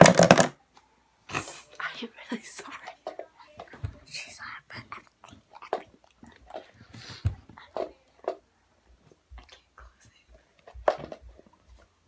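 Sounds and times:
soft whispering: 1.3 - 10.8.

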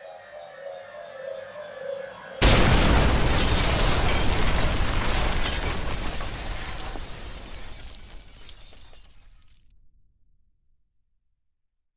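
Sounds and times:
rubble crumbling and shattering: 2.4 - 9.7.

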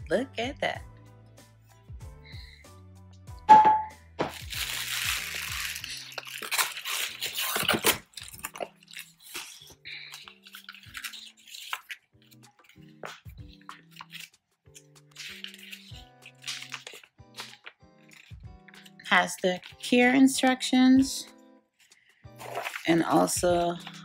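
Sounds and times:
background music: 0.0 - 24.0
plastic wrapping crinkling: 4.2 - 20.2, 21.8 - 24.0.

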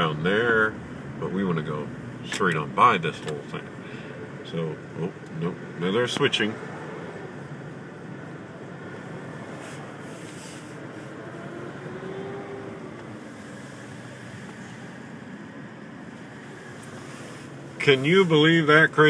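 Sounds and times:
car engine and road hum: 0.0 - 19.0
faint engine note rising and falling: 4.2 - 18.6.

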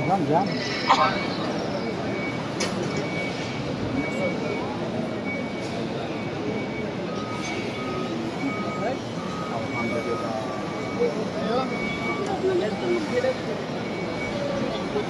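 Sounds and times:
crowd voices hubbub: 0.0 - 15.0
short electronic beeps: 0.0 - 15.0.

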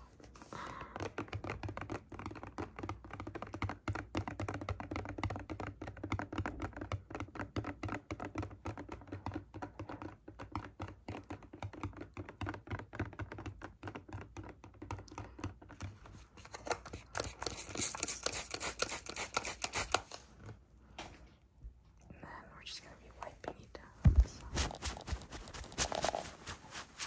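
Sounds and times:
fingernails tapping plastic bottle: 0.6 - 20.1.

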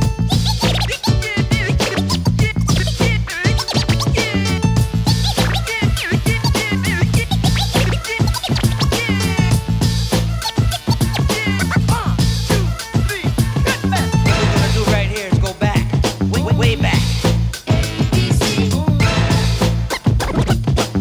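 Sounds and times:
bass-heavy hip hop beat: 0.0 - 21.0
turntable scratching: 0.0 - 21.0.

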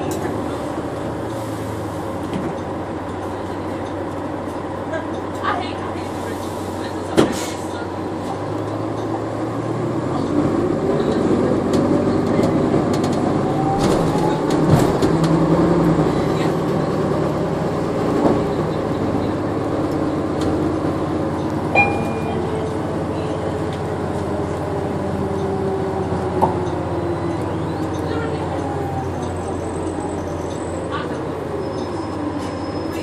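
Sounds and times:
bus engine running: 0.0 - 33.0.

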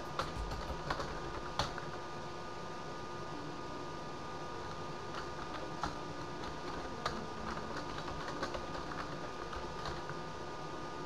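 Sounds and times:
computer keyboard typing: 0.0 - 1.9, 5.1 - 10.2
steady background hum: 0.0 - 11.0.

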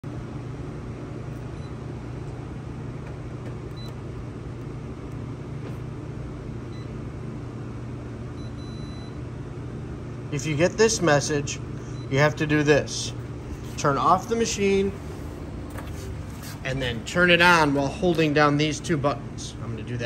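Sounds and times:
copier humming: 0.0 - 20.0.

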